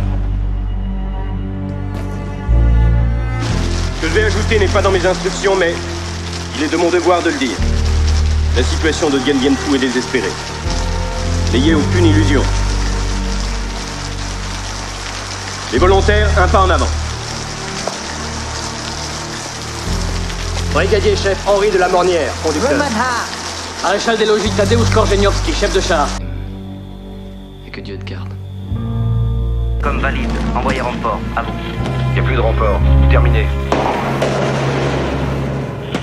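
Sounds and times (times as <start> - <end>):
low sustained musical score: 0.0 - 36.0
rain falling on pavement: 3.2 - 26.2, 29.8 - 36.0.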